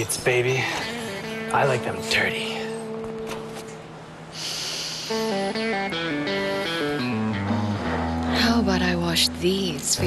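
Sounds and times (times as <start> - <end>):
plucked guitar riff: 0.7 - 3.9, 5.1 - 10.0.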